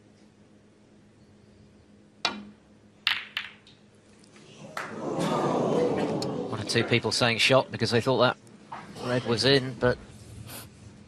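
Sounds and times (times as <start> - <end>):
cue tip striking ball: 3.1 - 3.7
snooker balls clicking: 3.1 - 3.8
audience murmur: 4.4 - 7.0.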